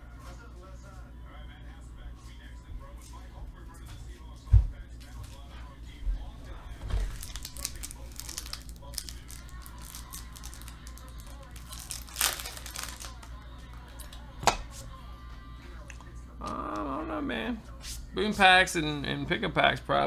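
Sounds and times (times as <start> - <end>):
faint music: 0.0 - 20.0
plastic crinkling and rustling: 6.9 - 13.3.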